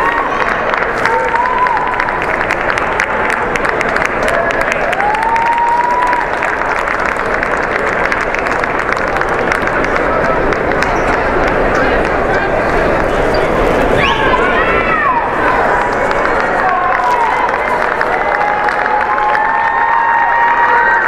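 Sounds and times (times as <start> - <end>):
crowd applauding and chattering: 0.0 - 21.0.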